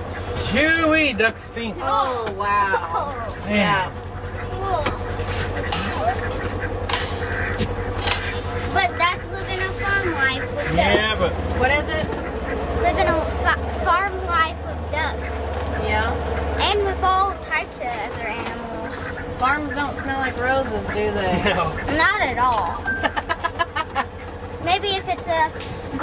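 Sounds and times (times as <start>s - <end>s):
utility vehicle engine droning: 0.0s - 26.0s.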